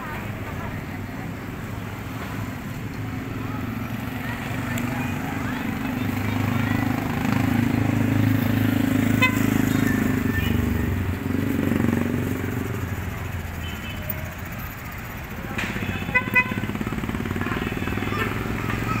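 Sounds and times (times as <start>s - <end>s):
small motorcycle engines passing: 0.1s - 19.0s.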